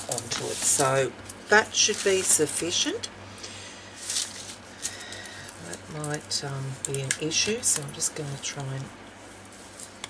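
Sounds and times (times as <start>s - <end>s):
paper rustling on cutting mat: 0.0s - 1.1s, 1.8s - 2.7s, 4.0s - 4.9s.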